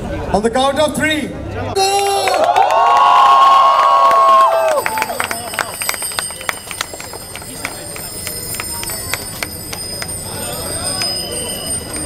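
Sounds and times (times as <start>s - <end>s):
crowd chattering: 0.0s - 2.0s, 4.6s - 12.0s
crowd clapping: 1.8s - 12.0s.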